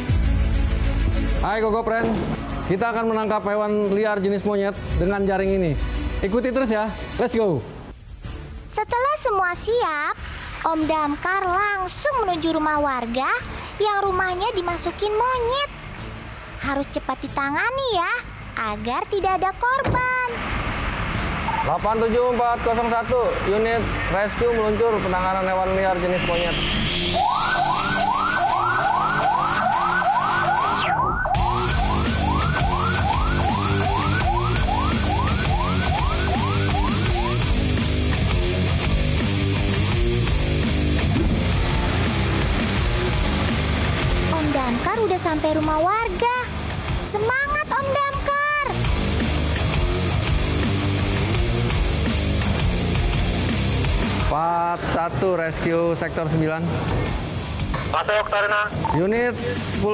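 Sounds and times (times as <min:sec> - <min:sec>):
background music: 0:00.0 - 0:59.9
siren yelping: 0:26.2 - 0:37.7, 0:47.2 - 0:48.8
man speaking: 0:57.9 - 0:59.9.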